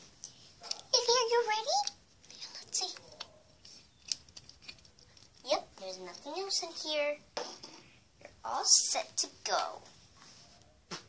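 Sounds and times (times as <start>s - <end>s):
plastic toys clicking and tapping: 0.2s - 6.7s.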